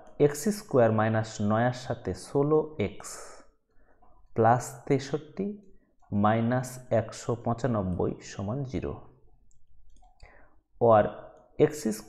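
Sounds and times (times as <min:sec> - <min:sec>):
person speaking: 0:10.8 - 0:12.0.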